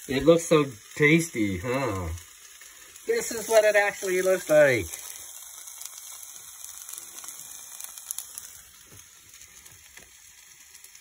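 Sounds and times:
potatoes sizzling in a frying pan: 0.0 - 11.0.

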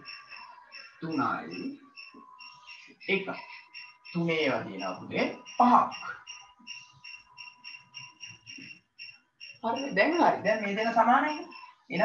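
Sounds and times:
faint cricket chirping: 0.0 - 12.0.

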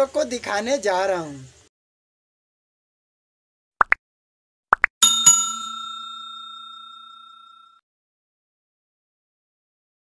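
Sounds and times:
bell chime sound effect: 5.0 - 7.8.

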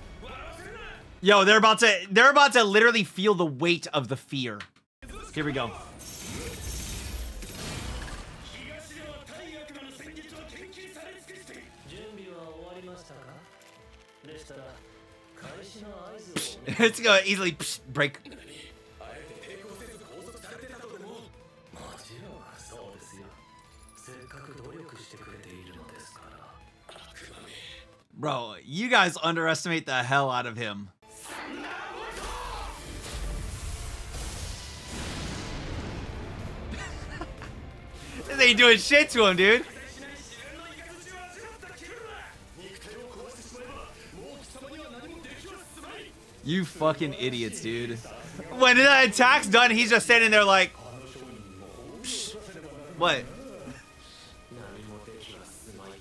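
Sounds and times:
person speaking: 38.2 - 39.7, 46.4 - 50.7
character shouting: 48.5 - 50.7.

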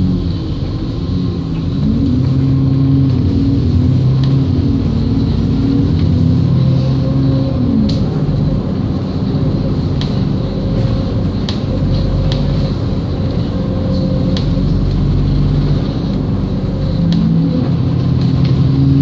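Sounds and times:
bus engine drone: 0.0 - 19.0.

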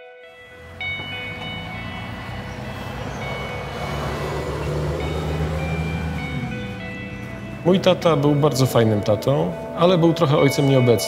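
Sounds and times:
soft background music: 0.0 - 11.0
passing vehicle rumble: 0.4 - 9.8.

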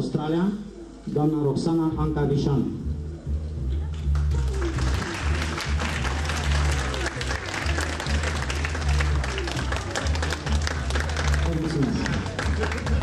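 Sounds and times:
background music with bass line: 0.7 - 13.0
audience applauding: 4.1 - 13.0.

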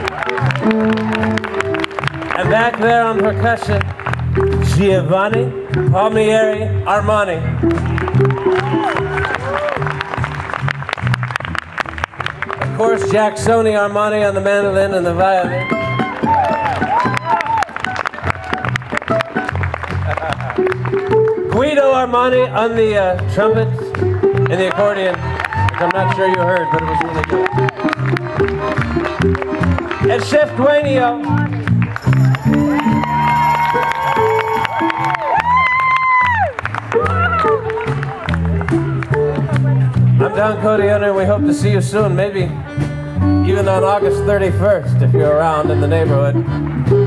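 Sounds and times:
audience cheering and whooping: 0.0 - 1.8, 7.9 - 10.5, 15.5 - 18.8, 24.8 - 28.2, 32.2 - 38.6
percussion: 0.0 - 6.7, 15.5 - 44.2
strummed guitar: 0.0 - 10.0, 18.4 - 35.6, 37.0 - 47.0
live swing band playing: 0.0 - 35.8, 36.6 - 47.0
pulsing bass line: 0.0 - 47.0.

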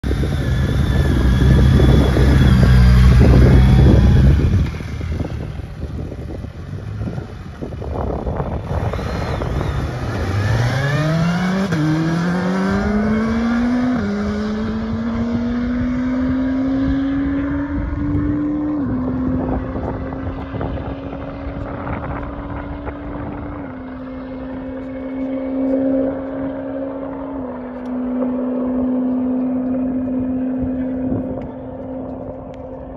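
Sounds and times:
motorcycle engine accelerating: 0.0 - 32.9.

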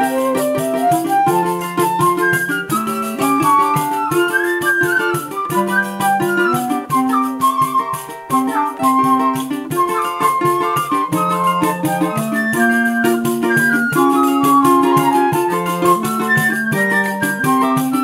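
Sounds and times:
flute and clarinet melody: 0.0 - 18.0
jingling tambourine beat: 0.0 - 18.0
strummed small guitar chords: 0.0 - 18.0.

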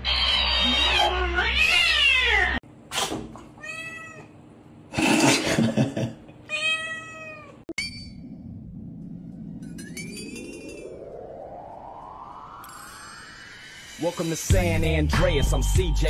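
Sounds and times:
cat meowing loudly: 0.0 - 2.6, 3.6 - 4.3, 6.5 - 7.6.

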